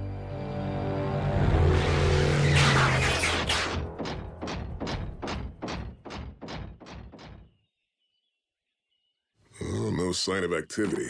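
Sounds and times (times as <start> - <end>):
mechanical thuds: 3.4 - 7.6.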